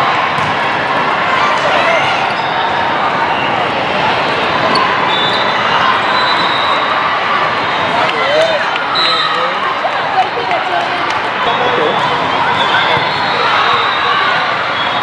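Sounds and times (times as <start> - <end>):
many voices talking and calling: 0.0 - 15.0.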